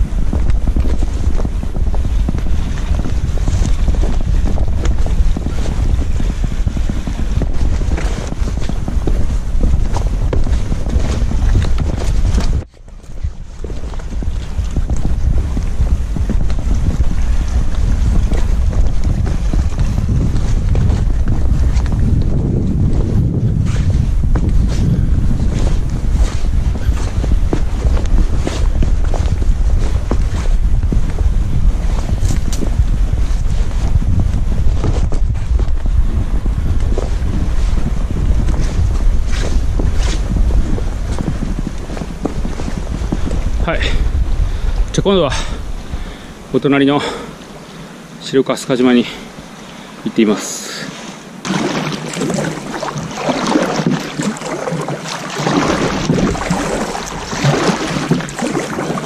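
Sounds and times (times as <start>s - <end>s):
footsteps on rock: 0.0s - 47.4s
wind buffeting microphone: 0.0s - 59.0s.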